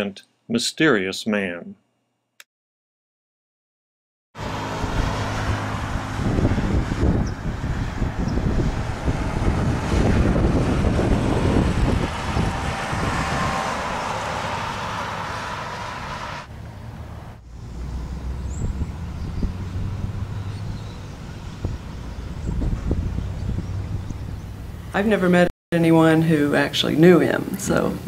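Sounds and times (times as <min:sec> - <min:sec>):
passing vehicles tyre noise: 0:04.4 - 0:25.2
wind on microphone: 0:04.5 - 0:16.2, 0:17.4 - 0:25.2.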